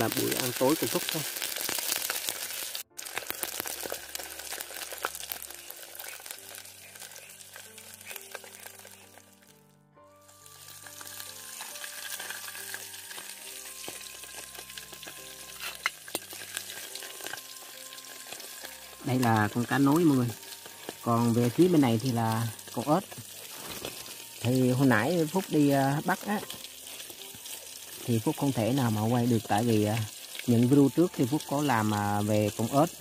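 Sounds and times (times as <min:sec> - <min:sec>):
campfire crackling and sizzling: 0:00.0 - 0:33.0
soft background music: 0:00.0 - 0:33.0.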